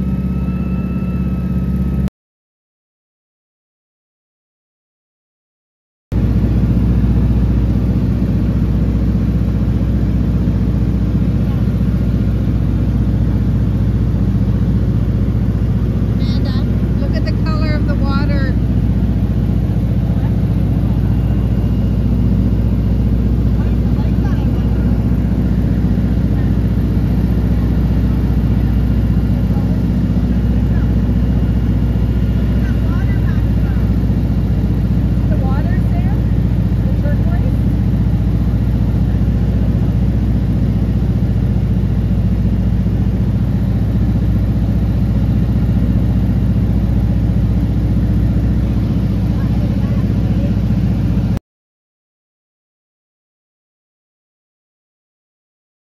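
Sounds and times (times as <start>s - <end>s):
airplane engine drone: 0.0s - 2.1s, 6.1s - 51.4s.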